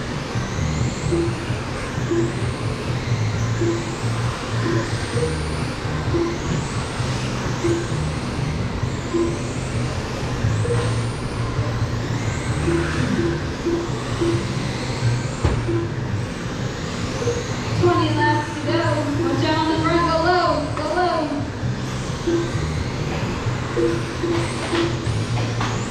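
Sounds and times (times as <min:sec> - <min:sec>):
remote control car motors whining: 0:00.0 - 0:25.9
music: 0:00.2 - 0:16.2, 0:17.9 - 0:25.9.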